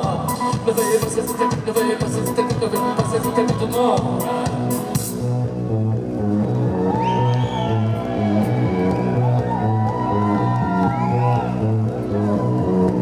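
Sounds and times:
repeating bass line: 0.0s - 13.0s.

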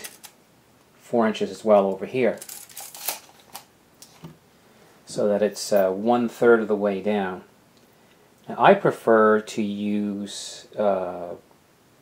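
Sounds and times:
small metal tools clattering: 2.3s - 3.6s.

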